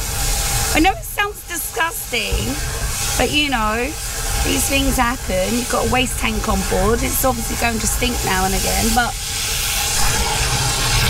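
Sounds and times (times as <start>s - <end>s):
hose water jet hissing: 0.0s - 11.0s.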